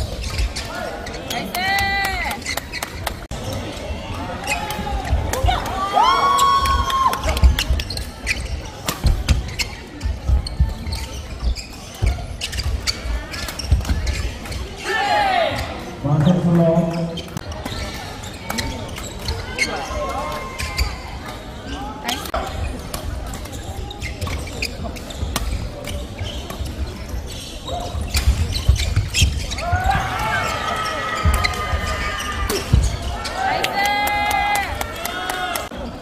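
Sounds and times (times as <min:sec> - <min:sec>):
voices shouting: 0:29.5 - 0:35.7.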